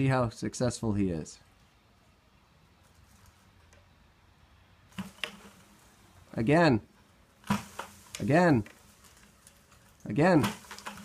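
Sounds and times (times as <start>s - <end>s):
bucket knocking against branch: 4.9s - 5.6s, 7.4s - 9.3s, 10.3s - 11.0s.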